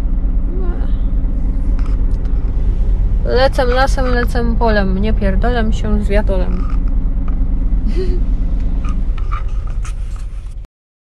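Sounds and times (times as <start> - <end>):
diesel engine rumble: 0.0 - 10.7.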